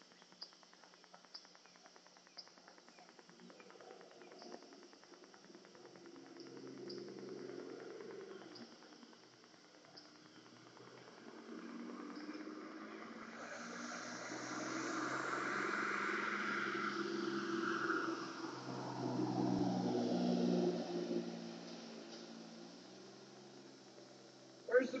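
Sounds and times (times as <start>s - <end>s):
vehicle passing: 10.8s - 25.0s.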